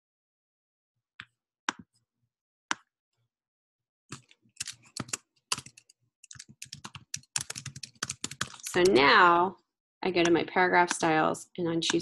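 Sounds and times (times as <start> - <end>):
typing on computer keyboard: 4.1 - 9.0.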